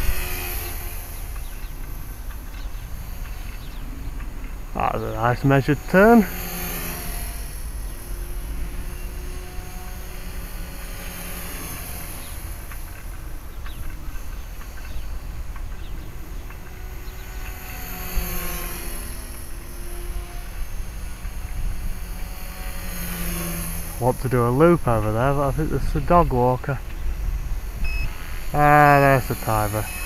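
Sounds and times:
rc helicopter rotor whine: 0.0s - 30.0s
wind rumble on microphone: 23.3s - 29.0s.

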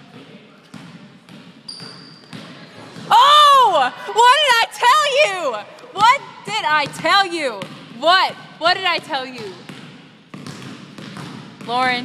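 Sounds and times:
basketball bouncing on wooden floor: 0.1s - 3.2s, 6.0s - 12.0s.

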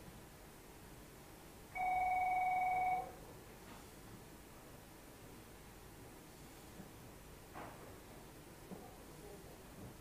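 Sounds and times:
electronic telephone ring: 1.8s - 3.2s.

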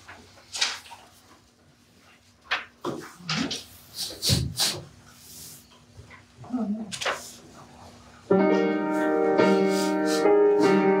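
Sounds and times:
hymnals rustling and knocking: 0.0s - 4.8s
murmured voice: 6.4s - 8.0s.

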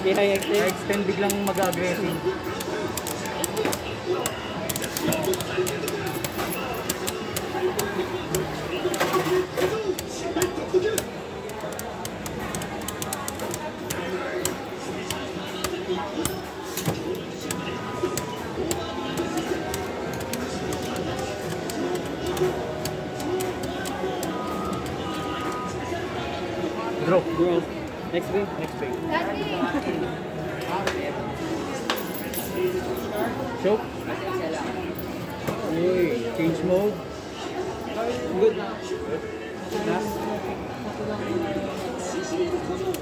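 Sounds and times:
murmur of voices: 0.0s - 43.0s.

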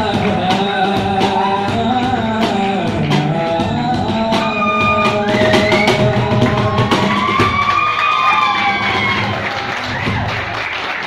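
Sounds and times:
cajon strikes: 0.0s - 7.9s
audience applause: 5.6s - 11.0s.

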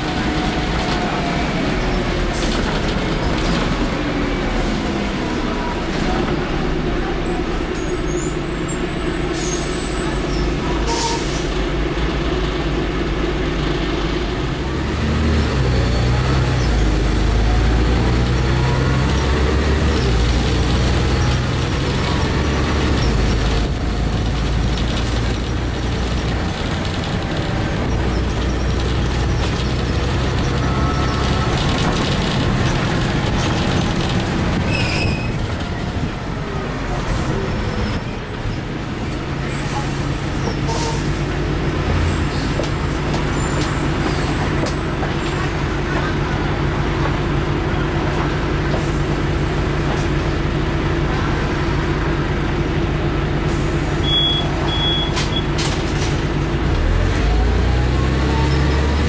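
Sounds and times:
bus diesel engine rumbling: 0.0s - 59.0s.

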